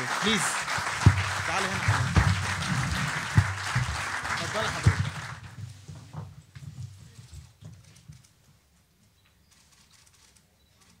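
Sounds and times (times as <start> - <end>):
applause: 0.0 - 5.7
faint knocks and thumps: 1.0 - 8.3.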